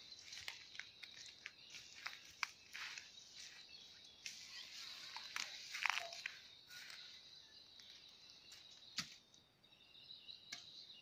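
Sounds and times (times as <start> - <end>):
hooves crunching dry leaves: 0.0 - 7.2.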